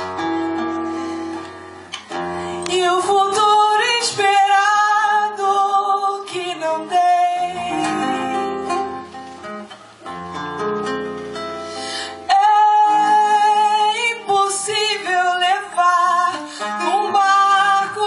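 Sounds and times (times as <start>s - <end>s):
plucked classical guitar: 0.0s - 18.0s
woman singing with vibrato: 2.6s - 9.0s, 12.0s - 18.0s.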